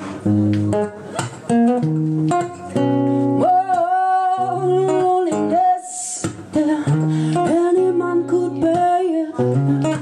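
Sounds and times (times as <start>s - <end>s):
acoustic guitar: 0.0s - 10.0s
woman singing: 3.2s - 10.0s.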